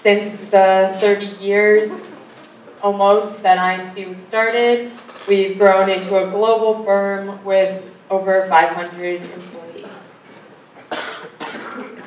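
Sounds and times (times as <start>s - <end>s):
person coughing in a hall: 1.8s - 2.4s, 9.8s - 12.0s.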